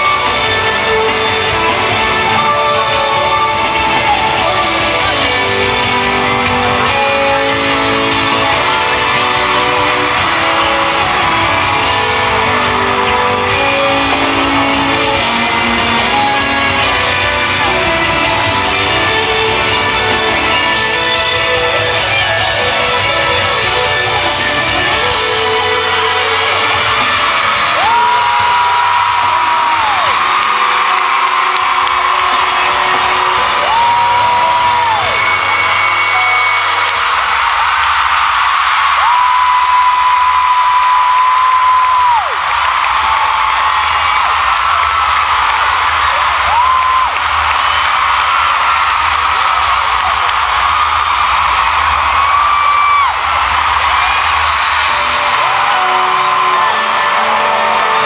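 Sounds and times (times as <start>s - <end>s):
concert music playing: 0.0s - 58.0s
crowd screaming and whooping: 0.0s - 58.0s.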